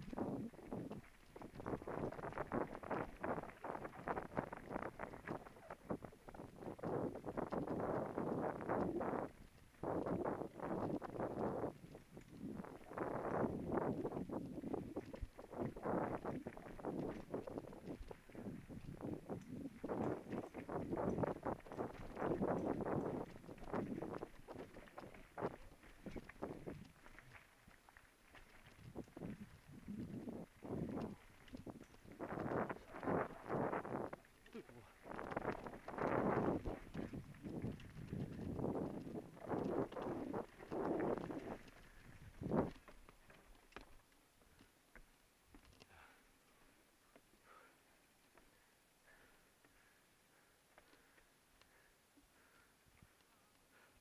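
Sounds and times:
bike rattling over rocky trail: 0:00.0 - 0:44.7
faint bike clicks: 0:00.0 - 0:54.0
bike frame and chain rattling: 0:13.5 - 0:27.2, 0:28.5 - 0:34.4.

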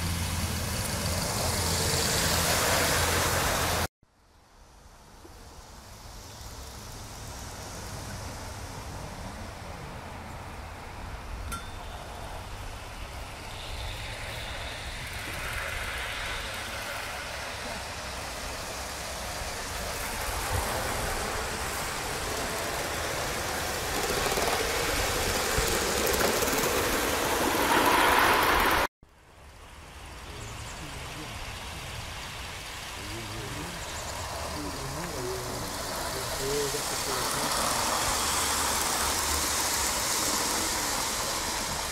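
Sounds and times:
model steam locomotive running: 0:11.5 - 0:28.9, 0:29.5 - 0:41.9.

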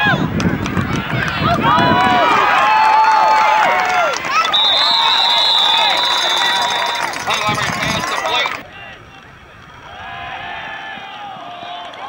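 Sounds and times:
crowd shouting and cheering: 0:00.0 - 0:12.0
referee's whistle blast: 0:04.4 - 0:07.6.

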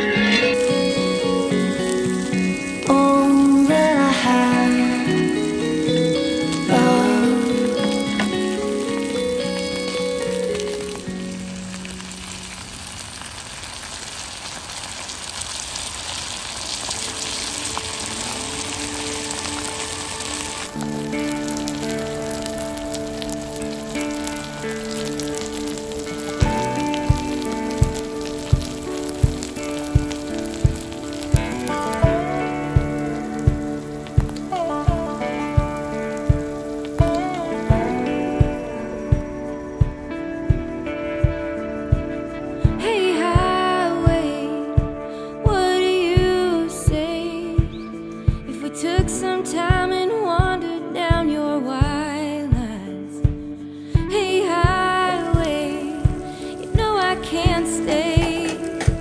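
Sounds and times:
background music: 0:00.0 - 0:13.0, 0:16.7 - 0:59.0
potatoes sizzling on griddle: 0:00.0 - 0:43.4, 0:54.6 - 0:59.0
steady drum beat: 0:24.8 - 0:47.7, 0:48.3 - 0:59.0.

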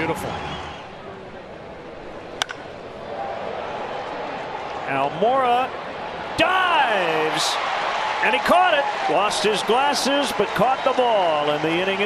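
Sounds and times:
baseball bat cracking ball: 0:02.4 - 0:02.8.

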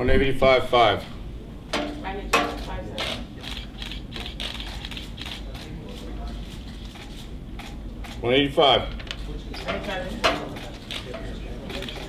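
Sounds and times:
camera shutters clicking: 0:03.0 - 0:06.1, 0:09.0 - 0:11.1, 0:11.7 - 0:12.0.

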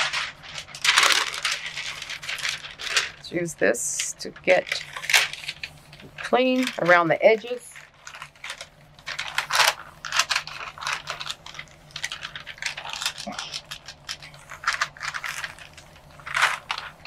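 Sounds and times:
paper rustling and rubbing: 0:00.0 - 0:03.2, 0:04.4 - 0:17.0
faint steady hum: 0:00.0 - 0:17.0.

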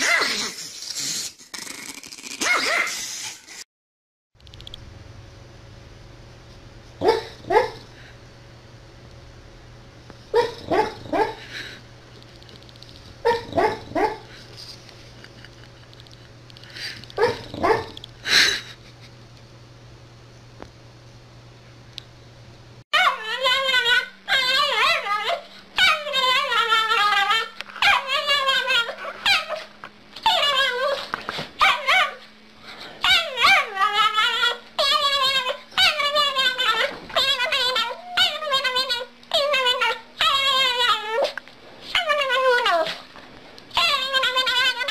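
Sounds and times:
dog whining high-pitched: 0:02.4 - 0:03.4, 0:23.0 - 0:32.2, 0:33.0 - 0:43.0, 0:43.7 - 0:44.9
dog barking in its sleep: 0:07.0 - 0:08.1, 0:10.3 - 0:11.5, 0:13.2 - 0:14.4, 0:17.2 - 0:18.0, 0:31.6 - 0:32.3.

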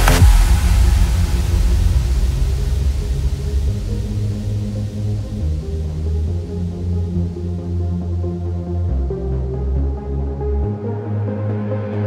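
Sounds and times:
deep bass synth notes: 0:00.0 - 0:12.0.

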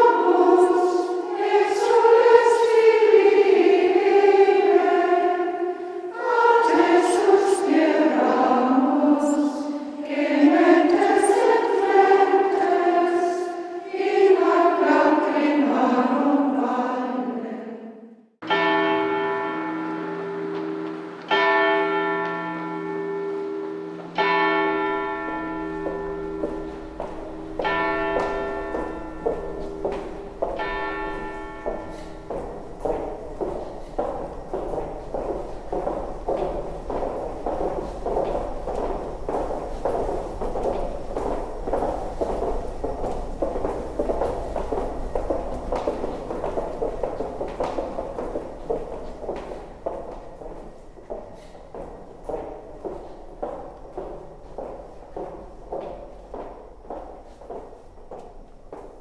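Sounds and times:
women's choir singing: 0:00.0 - 0:18.2, 0:25.8 - 0:57.0
footsteps on stone floor: 0:06.2 - 0:08.5, 0:18.5 - 0:59.0.

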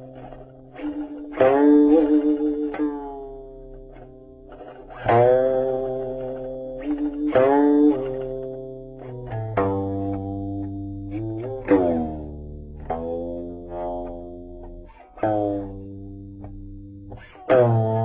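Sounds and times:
plucked zither notes: 0:00.0 - 0:18.0.

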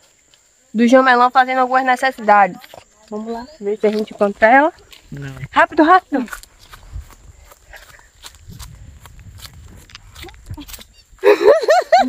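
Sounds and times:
footsteps on dry grass: 0:04.2 - 0:11.0
woman laughing loudly: 0:10.5 - 0:12.0.

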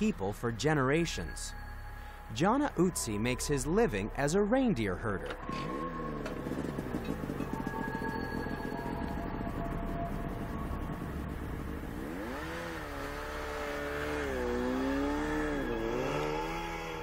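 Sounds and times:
snowmobile engine revving: 0:05.4 - 0:17.0.

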